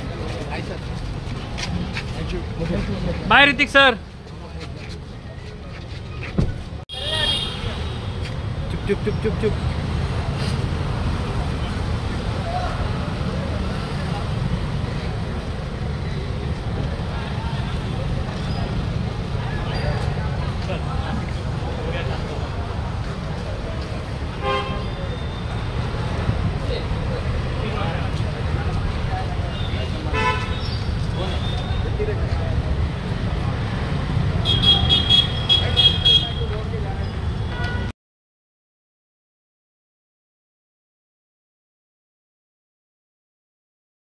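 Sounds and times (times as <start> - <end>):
crowd voices: 0.0 - 37.9
low rumble of street traffic: 0.0 - 37.9.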